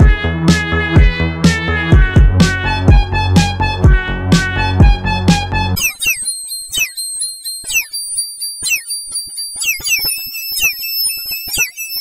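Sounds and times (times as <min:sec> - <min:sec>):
quick falling chirps: 0:05.8 - 0:12.0
shrill pitch-shifted electronic tones: 0:05.8 - 0:12.0.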